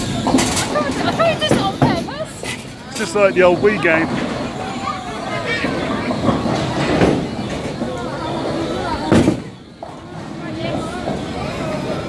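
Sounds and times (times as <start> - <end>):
bowling alley chatter: 0.0 - 12.0
bowling ball rolling: 0.0 - 12.0.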